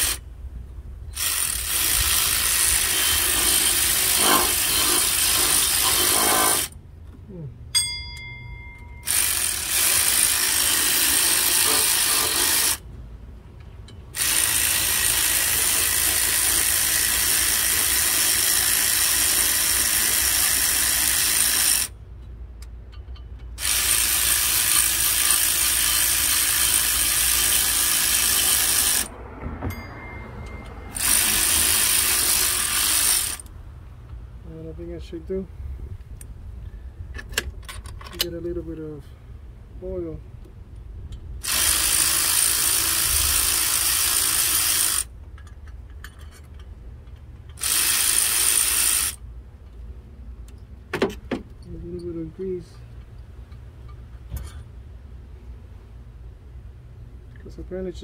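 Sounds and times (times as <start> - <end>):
ratchet wrench clicking: 14.2 - 21.9, 22.9 - 29.1, 30.9 - 33.5, 41.4 - 49.2.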